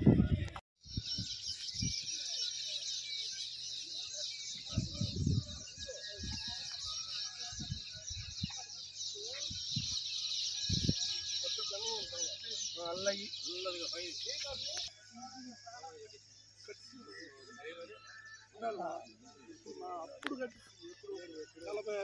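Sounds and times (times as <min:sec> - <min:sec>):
high-pitched chirping chorus: 0:00.0 - 0:22.0.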